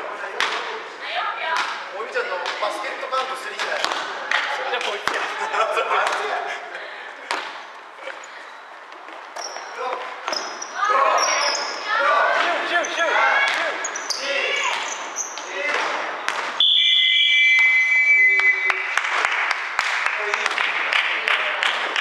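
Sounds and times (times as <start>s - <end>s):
players' voices: 0.0s - 16.6s
sneakers squeaking on hardwood floor: 8.0s - 12.0s, 12.6s - 15.5s.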